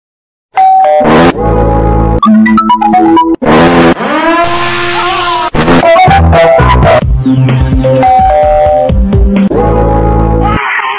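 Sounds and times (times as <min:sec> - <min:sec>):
car screeching: 0:03.7 - 0:05.6.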